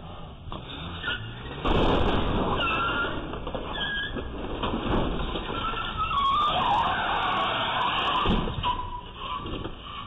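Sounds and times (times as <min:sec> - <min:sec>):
car crashing into brick: 0:01.4 - 0:09.7
tyres squealing: 0:02.6 - 0:04.3, 0:05.4 - 0:10.0.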